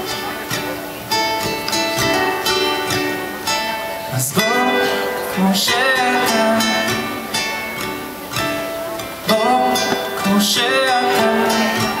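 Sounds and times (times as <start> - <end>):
ukulele strumming: 0.0 - 12.0.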